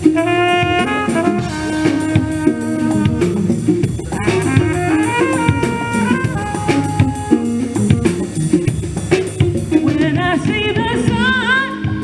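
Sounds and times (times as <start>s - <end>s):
steady bass: 0.0s - 9.9s
live band playing: 0.0s - 12.0s
woman singing: 9.7s - 12.0s.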